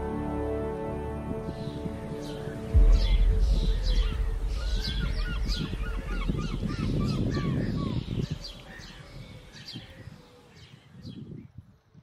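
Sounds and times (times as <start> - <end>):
birds whistling calls: 2.2 - 11.3
steady low rumble: 2.6 - 9.0.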